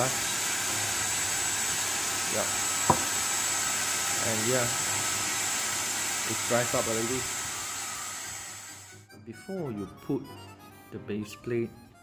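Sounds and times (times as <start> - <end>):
hair dryer running: 0.0 - 9.0.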